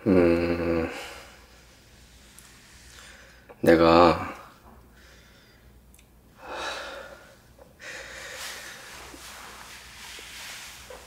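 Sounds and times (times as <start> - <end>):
man speaking: 3.6 - 4.5
man breathing deeply: 4.9 - 5.8, 6.4 - 9.5.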